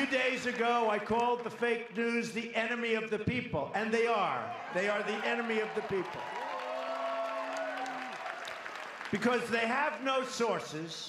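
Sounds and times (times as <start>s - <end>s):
audience applauding and cheering: 0.0s - 1.5s, 4.5s - 10.3s.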